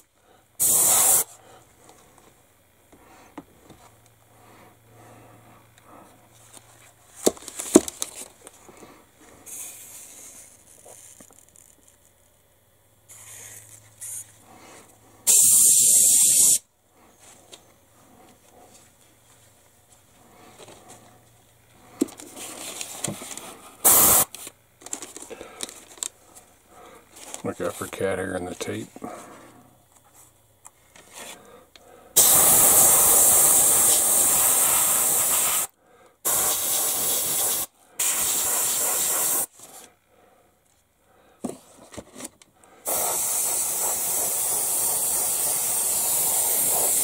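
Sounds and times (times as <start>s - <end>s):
airbrush spraying hiss: 0.6s - 1.4s, 9.5s - 10.5s, 13.1s - 14.3s, 15.3s - 16.6s, 23.8s - 24.3s, 32.2s - 35.7s, 36.3s - 39.5s, 42.8s - 47.0s.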